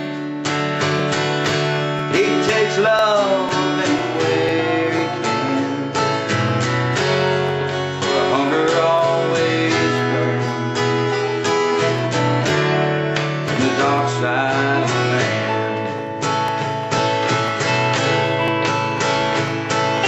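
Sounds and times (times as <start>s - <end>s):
acoustic guitar strumming: 0.0s - 20.0s
electric guitar through amplifier: 0.0s - 20.0s.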